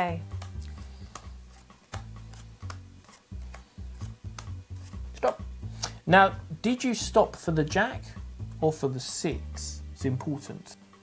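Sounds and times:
background music with bass line: 0:00.0 - 0:11.0
cards dealt onto mat: 0:00.3 - 0:05.2.

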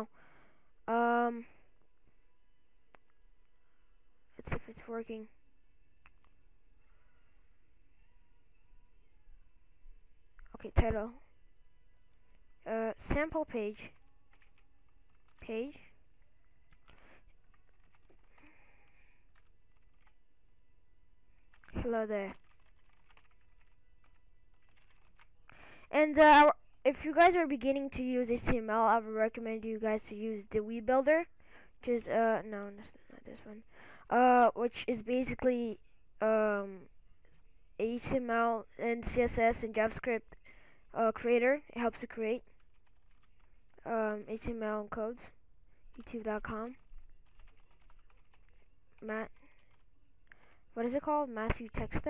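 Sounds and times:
faint keyboard typing: 0:06.0 - 0:06.4, 0:13.7 - 0:15.9, 0:16.6 - 0:20.2, 0:21.3 - 0:25.6, 0:42.2 - 0:44.5, 0:45.8 - 0:50.6.

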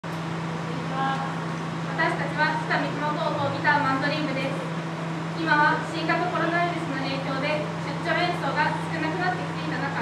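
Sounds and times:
ambient noise: 0:00.0 - 0:10.0
steady low hum: 0:00.0 - 0:10.0.

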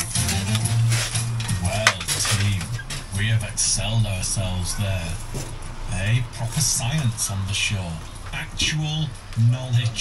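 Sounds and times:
concrete blocks clinking: 0:00.0 - 0:03.4
radio playing music: 0:00.0 - 0:10.0.

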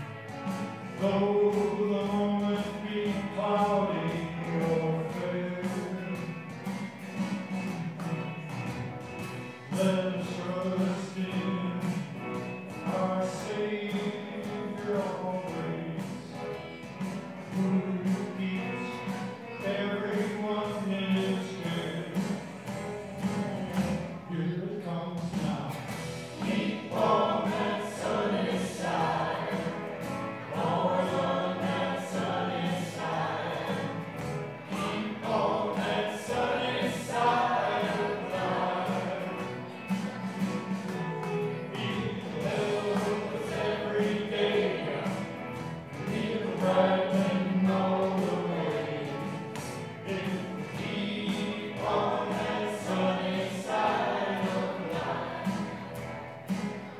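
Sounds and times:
gospel band playing: 0:00.0 - 0:56.9
guitars: 0:00.0 - 0:56.9
violin: 0:00.0 - 0:56.9
group singing: 0:26.3 - 0:56.9.

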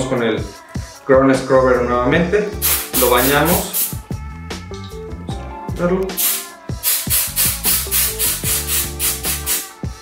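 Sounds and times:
aerosol can spraying hissing bursts: 0:02.6 - 0:04.0, 0:06.1 - 0:09.8.

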